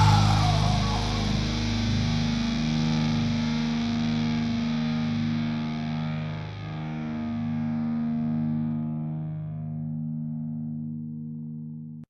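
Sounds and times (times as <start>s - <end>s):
distorted electric guitar sustained notes: 0.0s - 12.0s.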